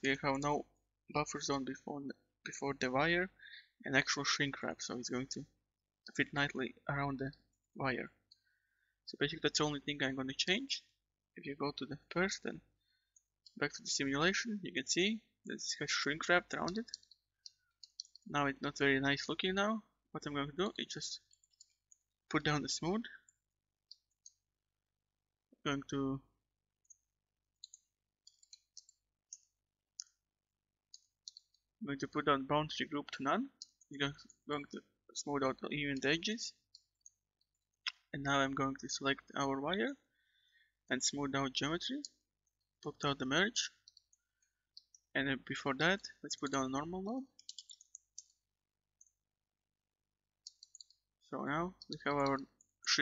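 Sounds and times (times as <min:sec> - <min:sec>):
computer mouse clicks: 0:16.5 - 0:18.3, 0:26.8 - 0:30.2, 0:47.4 - 0:48.4, 0:50.4 - 0:51.0.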